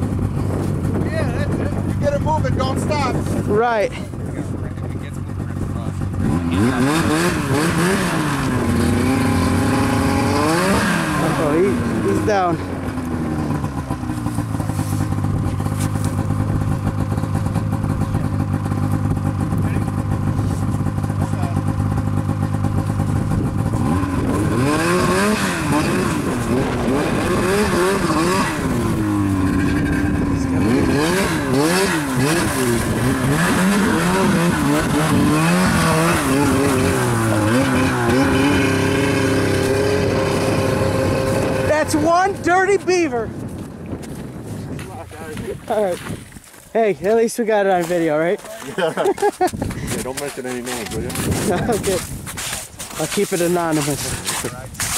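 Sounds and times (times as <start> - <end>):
snowmobile engine revving: 0.0 - 43.4, 47.6 - 54.9.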